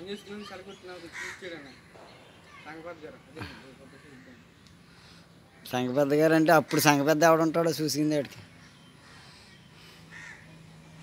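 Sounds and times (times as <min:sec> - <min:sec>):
harsh bird call: 0:00.0 - 0:05.8.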